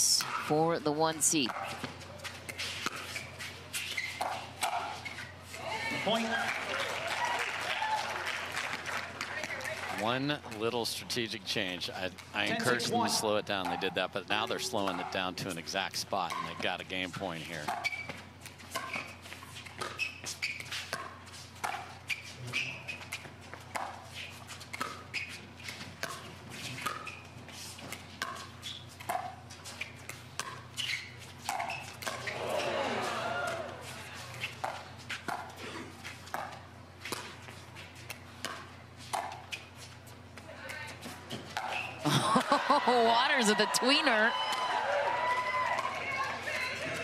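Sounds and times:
voices: 12.4 - 16.6, 42.1 - 44.4.

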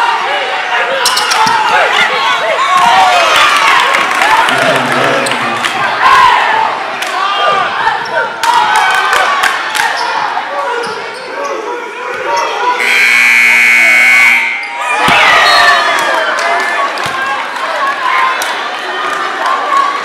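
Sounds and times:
crowd talking and shouting: 0.0 - 20.0
scoreboard buzzer: 12.8 - 14.8.

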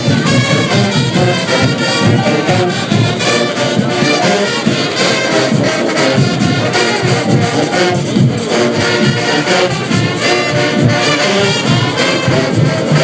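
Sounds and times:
brass band playing: 0.0 - 13.0
percussion strikes: 0.0 - 13.0.

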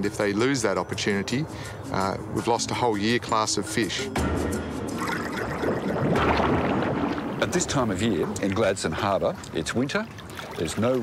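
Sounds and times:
water splashing against hull: 4.5 - 11.0.

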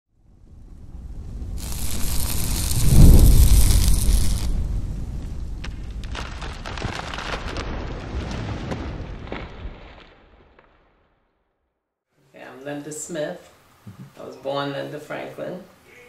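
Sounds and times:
crackling sparks: 0.2 - 10.8
deep boom: 0.5 - 6.6
hissing rush: 1.2 - 5.4.

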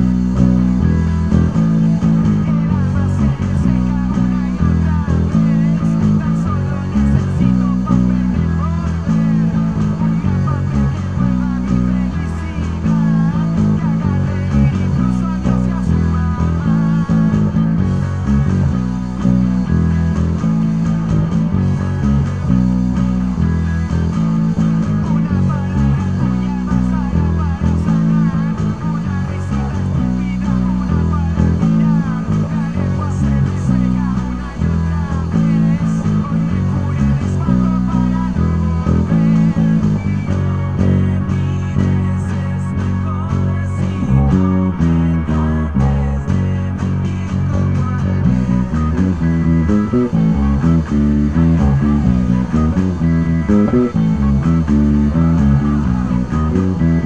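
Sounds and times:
electric bass guitar line: 0.0 - 57.0
rock song with vocals: 0.0 - 57.0.

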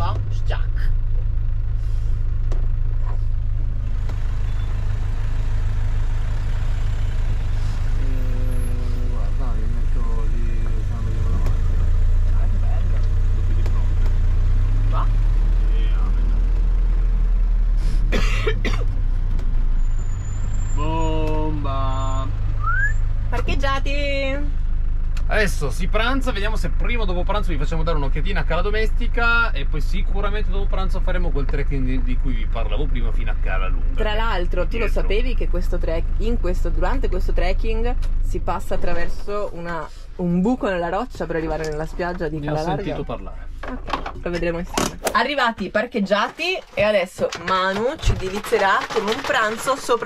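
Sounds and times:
engine low drone: 0.0 - 45.6.

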